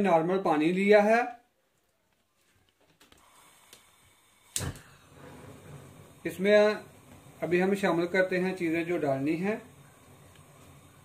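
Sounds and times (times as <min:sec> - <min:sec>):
gas igniting pop: 0:03.2 - 0:06.0
gas burner click: 0:04.5 - 0:05.0.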